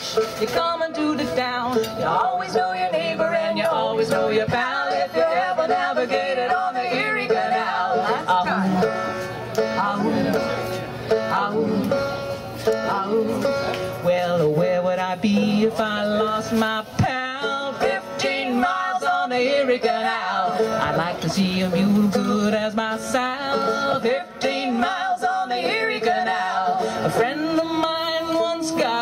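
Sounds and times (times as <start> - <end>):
people singing: 0.0 - 10.5, 11.2 - 12.0, 12.8 - 29.0
banjo: 0.0 - 29.0
folk band playing: 0.0 - 29.0.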